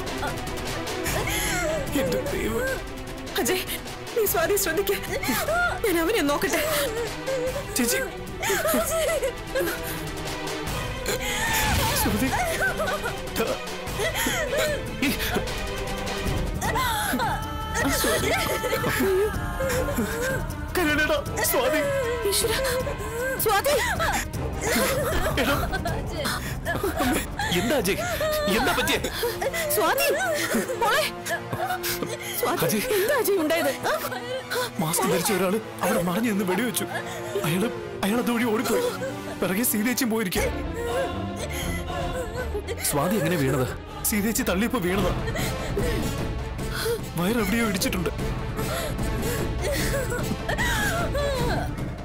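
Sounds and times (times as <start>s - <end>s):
dramatic background music: 0.0s - 52.0s
woman crying out: 5.0s - 9.9s, 11.1s - 15.5s, 16.6s - 39.3s, 40.4s - 43.8s, 49.6s - 51.8s.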